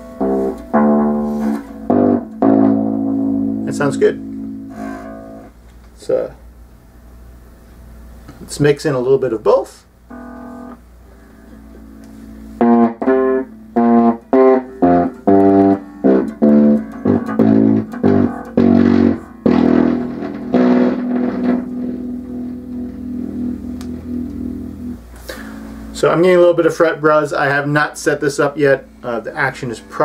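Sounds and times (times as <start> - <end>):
plucked electric bass notes: 0.0 - 6.2, 10.1 - 30.0
bass fret buzz: 0.0 - 6.4, 10.0 - 30.0.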